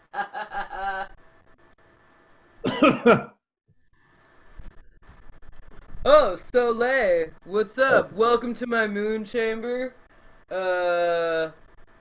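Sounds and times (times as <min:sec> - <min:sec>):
person laughing: 0:00.0 - 0:01.2, 0:02.7 - 0:03.4.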